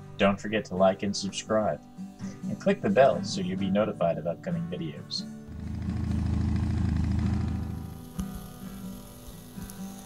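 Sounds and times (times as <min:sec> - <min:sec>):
quiet background music: 0:00.0 - 0:10.0
low engine rumble: 0:05.5 - 0:08.0.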